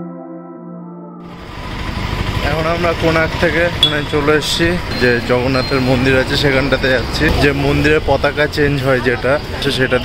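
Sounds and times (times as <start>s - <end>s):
soft ambient music: 0.0s - 1.4s
engines rumbling: 1.2s - 10.0s
motorbikes: 1.2s - 10.0s.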